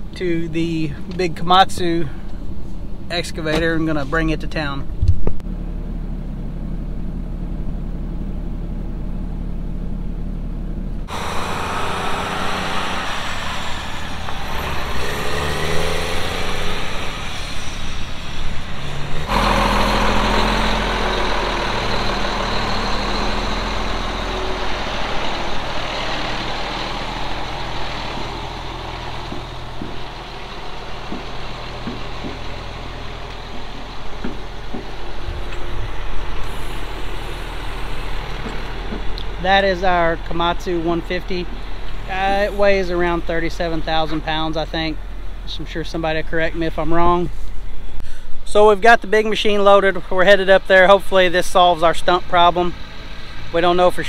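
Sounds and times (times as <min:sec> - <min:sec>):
diesel engine running: 0:00.0 - 0:54.0.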